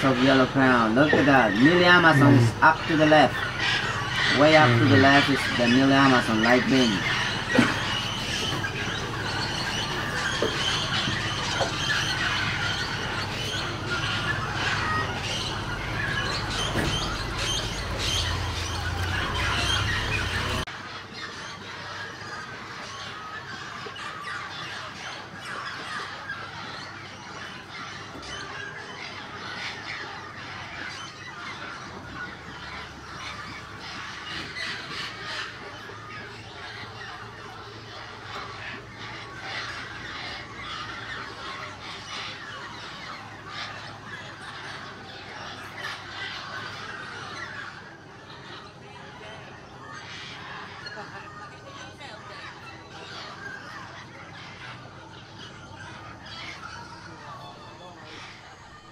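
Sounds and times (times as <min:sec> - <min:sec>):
parrots squawking and chattering: 0:00.0 - 0:58.9.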